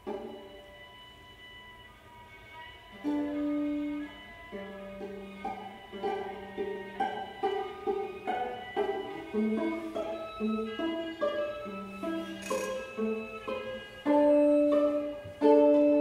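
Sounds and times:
violas playing classical music: 0.0s - 16.0s.

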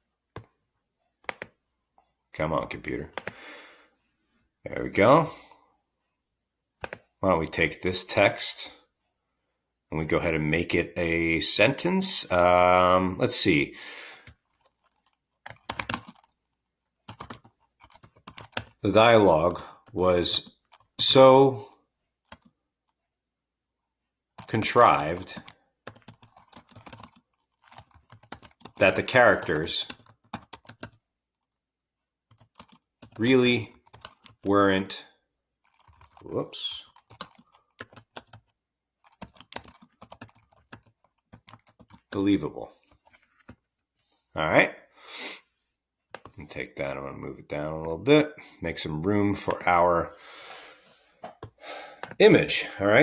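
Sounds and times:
typing on computer keyboard: 1.2s - 1.6s, 3.1s - 3.4s, 6.8s - 7.1s, 14.5s - 16.4s, 17.1s - 18.8s, 19.5s - 21.0s, 22.3s - 22.6s, 24.4s - 31.0s, 32.3s - 34.5s, 35.6s - 42.2s.

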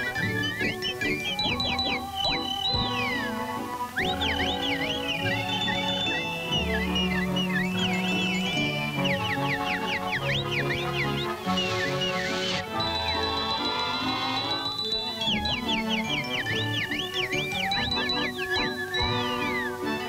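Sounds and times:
orchestral cartoon music: 0.0s - 20.0s
whistled bird chirps: 0.0s - 20.0s.

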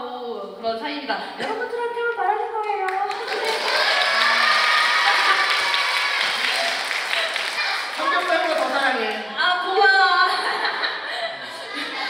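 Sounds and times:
audience applauding: 2.9s - 9.2s
children calling out: 3.3s - 8.4s.

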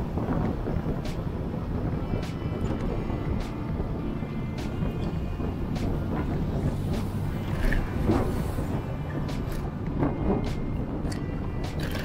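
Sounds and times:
road rumble: 0.0s - 12.0s
wind on microphone: 0.0s - 12.0s.

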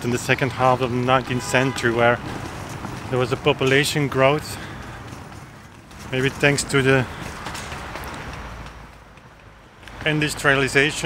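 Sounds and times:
distant city traffic rumble: 0.0s - 11.0s.

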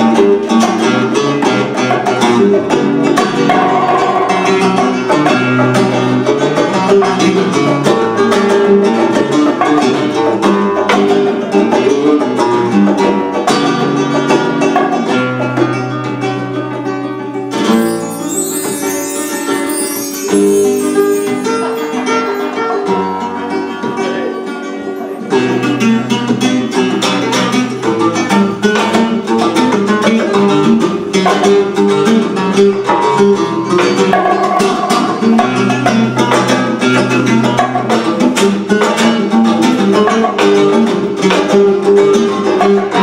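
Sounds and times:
acoustic flamenco guitars: 0.0s - 43.0s
hand percussion on cajon and drum: 0.0s - 43.0s.

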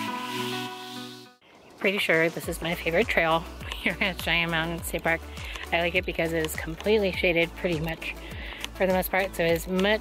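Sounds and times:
electronic chords music: 0.0s - 1.4s.

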